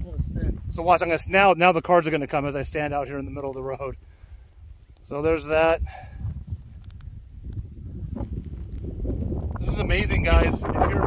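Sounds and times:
wind rumble on microphone: 0:00.0 - 0:11.0
faint clicks: 0:06.6 - 0:07.6.

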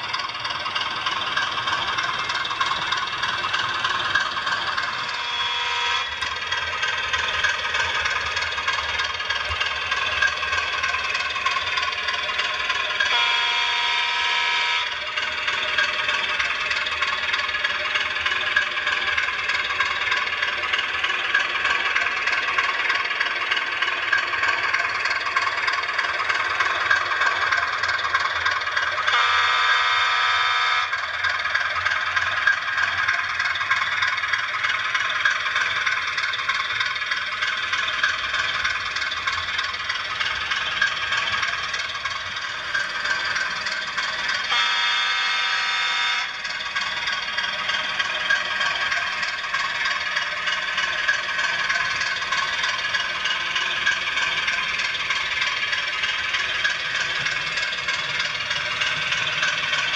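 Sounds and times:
model train diesel engine sound: 0:00.0 - 0:59.9
train horn blasts: 0:05.0 - 0:06.3, 0:13.0 - 0:15.0, 0:29.0 - 0:31.0, 0:44.4 - 0:46.5.

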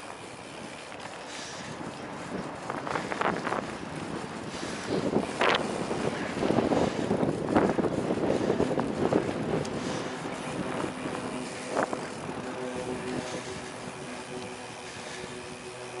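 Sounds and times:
bicycle rolling on pavement: 0:00.0 - 0:16.0
faint steady hum: 0:00.0 - 0:16.0
wind buffeting microphone: 0:00.0 - 0:16.0.

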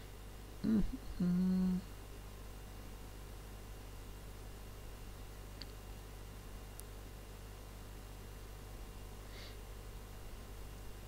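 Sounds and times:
person humming: 0:00.6 - 0:01.9.

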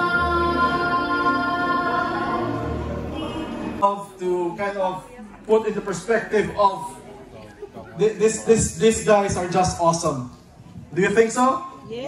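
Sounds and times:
slow music with choral singing: 0:00.0 - 0:03.8.

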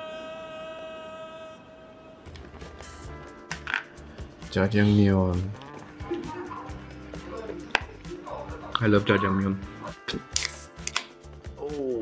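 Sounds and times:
person singing a high note: 0:00.0 - 0:02.3.

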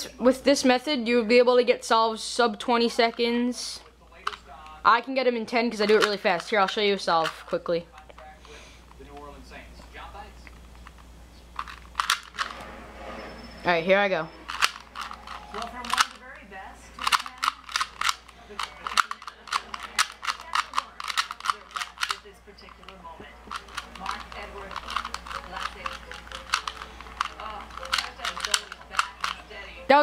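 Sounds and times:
plastic puzzle cube clicking: 0:05.8 - 0:08.1, 0:11.6 - 0:12.5, 0:14.5 - 0:16.2, 0:17.0 - 0:29.4.

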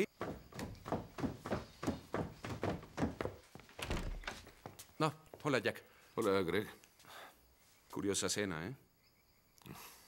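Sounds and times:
footsteps on wooden stairs: 0:00.0 - 0:05.5.

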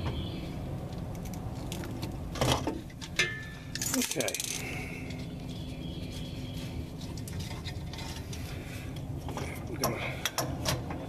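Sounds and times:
steady low rumble: 0:00.0 - 0:11.0
rustling of handled wiring: 0:02.8 - 0:10.4.

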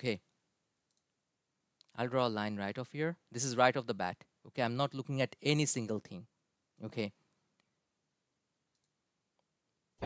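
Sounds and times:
computer mouse clicks: 0:08.7 - 0:09.0.

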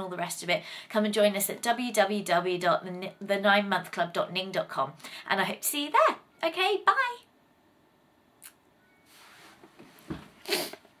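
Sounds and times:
clothing brushing microphone: 0:09.1 - 0:10.8.

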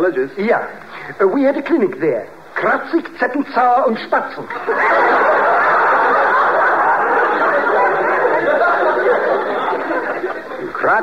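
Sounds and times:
studio audience laughing: 0:04.5 - 0:11.0.

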